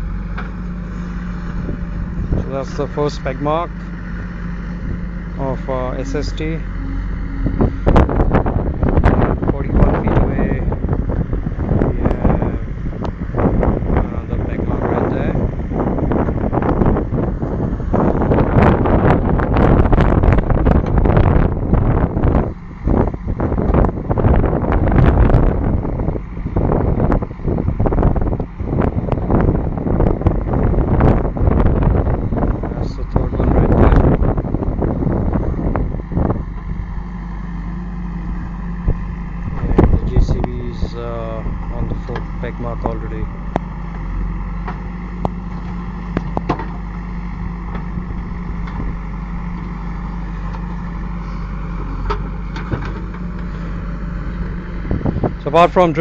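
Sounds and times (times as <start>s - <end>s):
diesel engine running: 0.0s - 56.0s
gusty wind buffeting microphone: 0.0s - 56.0s.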